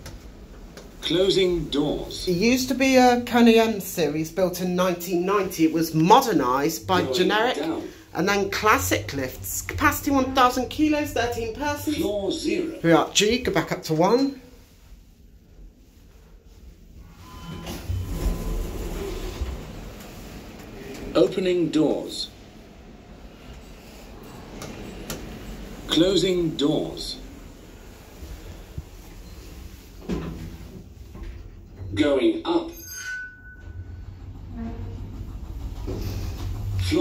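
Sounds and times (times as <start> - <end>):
lift doors rumbling open: 17.0 - 32.4, 33.2 - 37.0.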